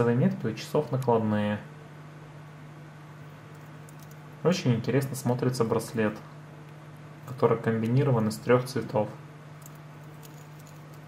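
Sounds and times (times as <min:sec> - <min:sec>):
steady low hum: 0:00.0 - 0:11.0
metal watch bracelet clinking: 0:09.6 - 0:11.0.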